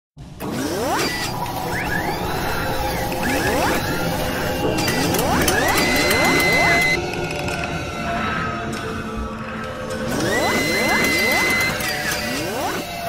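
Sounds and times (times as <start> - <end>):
held tone: 3.1 - 7.0.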